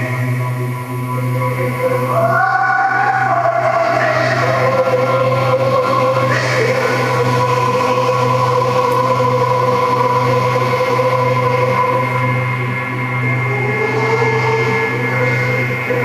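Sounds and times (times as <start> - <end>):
electronic ambient drone music: 0.0 - 16.0.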